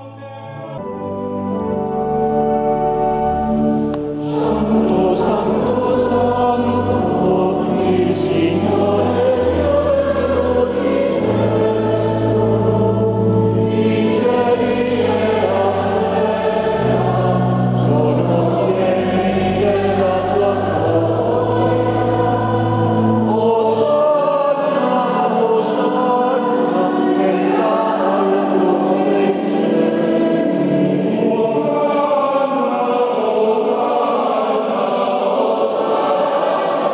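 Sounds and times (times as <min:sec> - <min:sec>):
choir singing a hymn: 0:00.0 - 0:36.9
pipe organ low notes: 0:00.0 - 0:36.9.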